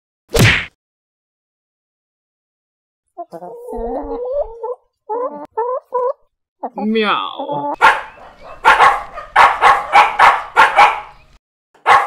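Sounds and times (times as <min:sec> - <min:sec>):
chicken clucking: 0:03.2 - 0:06.8, 0:07.4 - 0:11.3.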